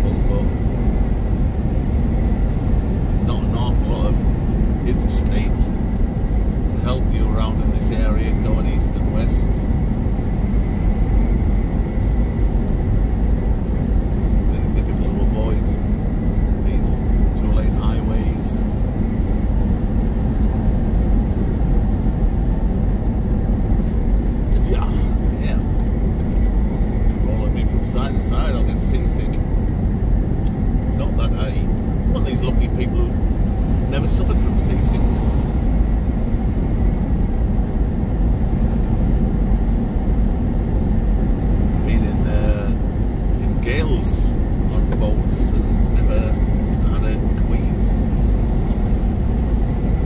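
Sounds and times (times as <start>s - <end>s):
truck engine and road rumble: 0.0s - 50.0s.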